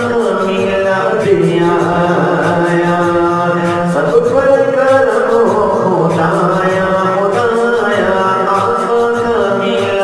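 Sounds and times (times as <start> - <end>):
person chanting recitation: 0.0 - 10.0.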